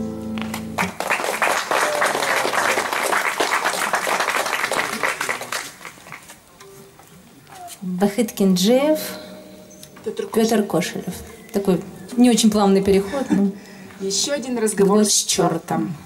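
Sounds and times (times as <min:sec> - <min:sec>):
audience applause: 0:00.4 - 0:06.3.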